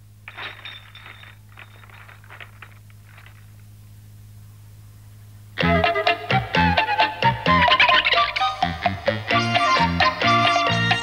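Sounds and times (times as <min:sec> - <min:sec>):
glass bottles clinking: 0:00.3 - 0:03.4.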